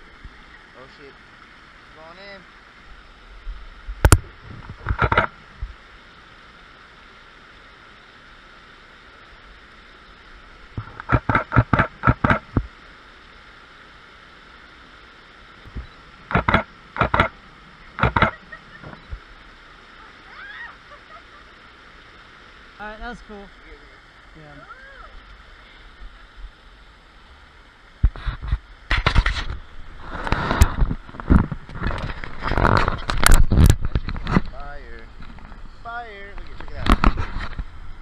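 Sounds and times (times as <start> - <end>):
waterfall rushing: 4.1 - 27.9.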